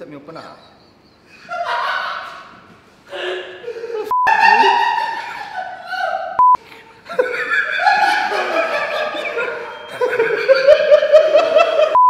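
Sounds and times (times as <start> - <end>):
men laughing and talking: 1.2 - 6.3, 7.0 - 12.0.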